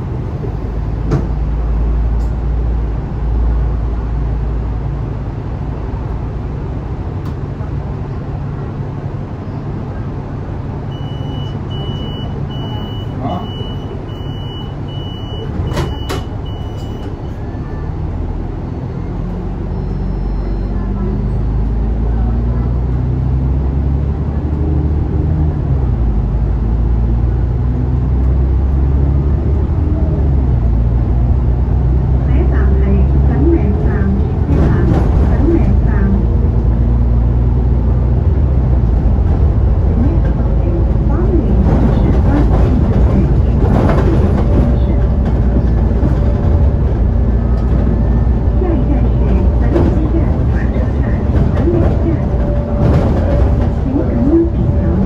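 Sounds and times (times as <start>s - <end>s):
bus diesel engine accelerating: 0.0s - 55.0s
high steady beep: 10.9s - 17.1s, 19.7s - 21.4s.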